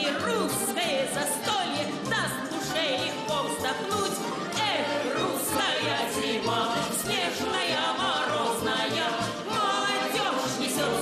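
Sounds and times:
accordion with bass beat: 0.0 - 11.0
woman singing with vibrato: 0.0 - 11.0
choral voices: 2.1 - 11.0.

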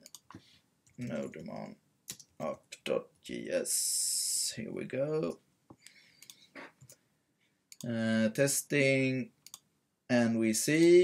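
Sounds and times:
keyboard and mouse clicks: 0.0 - 1.5, 2.1 - 2.4, 5.7 - 7.0, 9.4 - 9.7
man speaking: 1.0 - 1.8, 2.4 - 5.4, 7.8 - 9.3, 10.1 - 11.0.

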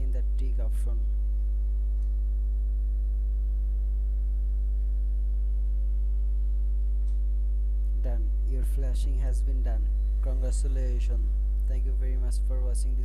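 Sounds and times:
electrical mains hum: 0.0 - 13.0
faint high-pitched whine: 0.0 - 13.0.

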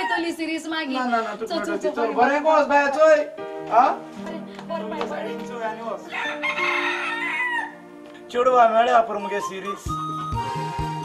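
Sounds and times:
rooster crowing: 0.0 - 0.3, 6.1 - 7.9.

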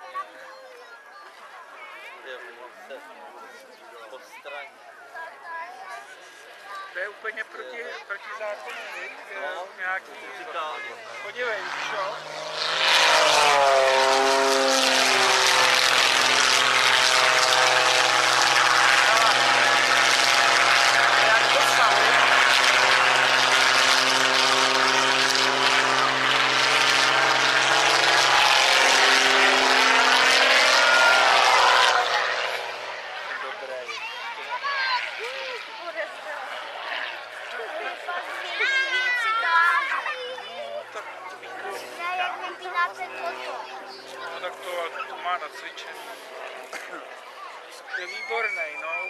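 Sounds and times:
propeller plane engine: 5.6 - 49.0.

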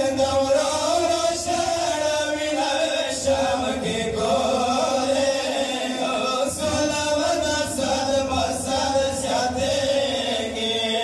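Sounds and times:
men chanting a lament: 0.0 - 11.0.

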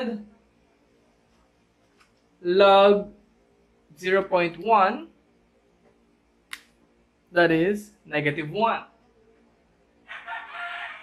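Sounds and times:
rooster crowing: 10.1 - 11.0.

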